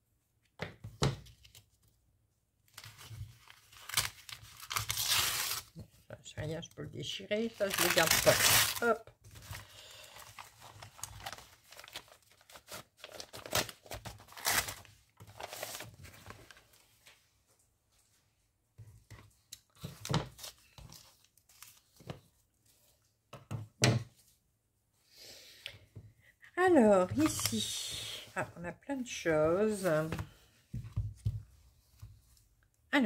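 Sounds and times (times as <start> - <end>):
plastic wrapping crinkling and tearing: 2.7 - 5.8, 7.4 - 16.6
paper rustling: 2.7 - 5.9, 7.4 - 17.2.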